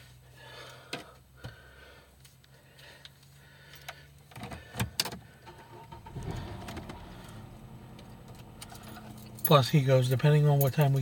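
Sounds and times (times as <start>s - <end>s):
car engine cranking and idling: 0.0s - 11.0s.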